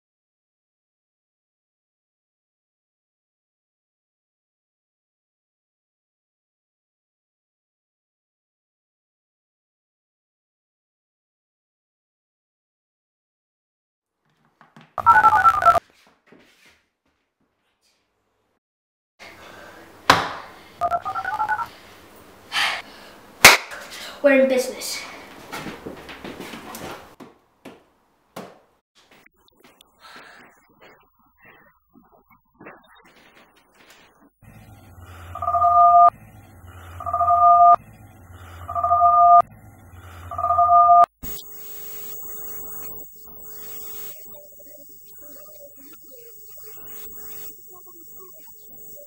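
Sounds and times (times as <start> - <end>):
electronic hum with high whine: 34.4 - 49.0
electronic two-tone alarm: 35.0 - 37.8, 38.4 - 39.5, 40.1 - 49.0.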